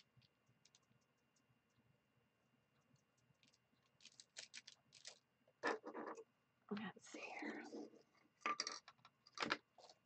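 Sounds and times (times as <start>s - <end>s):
person whispering: 6.7s - 8.0s.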